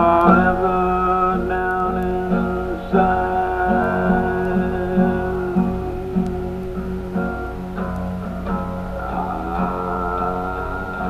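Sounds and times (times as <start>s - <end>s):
guitar chords ringing: 0.0s - 11.0s
steady low hum: 0.0s - 11.0s.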